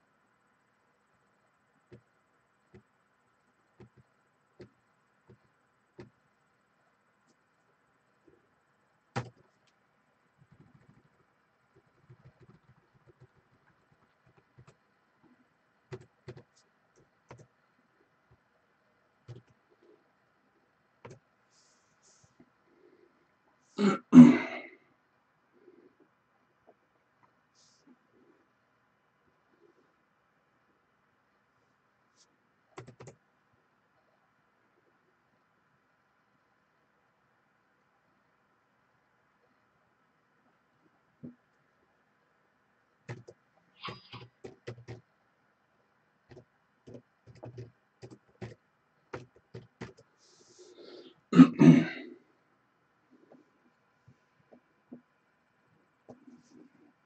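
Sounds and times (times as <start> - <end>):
man clearing his throat: 23.8 - 24.7, 51.4 - 52.1.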